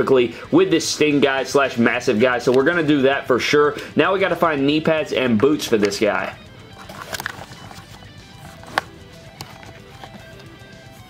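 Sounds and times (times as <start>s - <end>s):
soft background music: 0.0s - 11.0s
plastic parts clicking: 6.7s - 10.6s.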